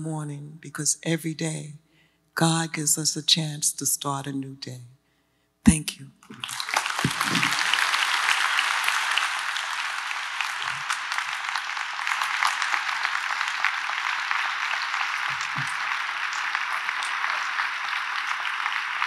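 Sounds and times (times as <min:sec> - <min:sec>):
large audience applauding: 0:06.3 - 0:19.0.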